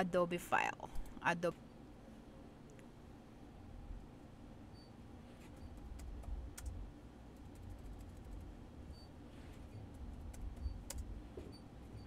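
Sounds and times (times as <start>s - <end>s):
low hum: 0.0s - 12.0s
computer keyboard typing: 5.6s - 6.8s, 7.4s - 8.6s, 9.9s - 11.1s.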